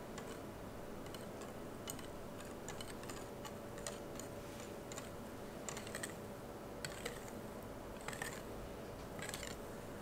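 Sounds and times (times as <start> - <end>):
whisk clicking against glass bowl: 0.2 - 0.4, 1.0 - 6.2, 6.8 - 7.4, 8.0 - 8.4, 9.2 - 9.6.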